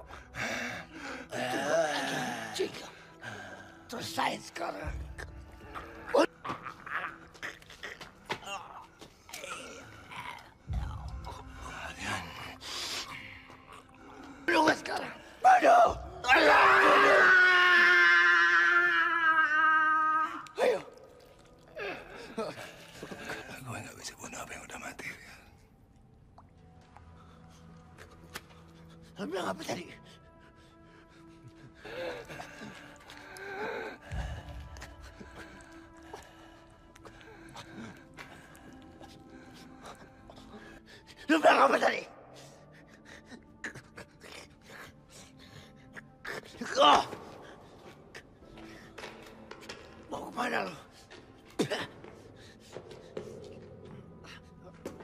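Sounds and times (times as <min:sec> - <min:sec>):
person screaming: 0:15.8 - 0:20.9.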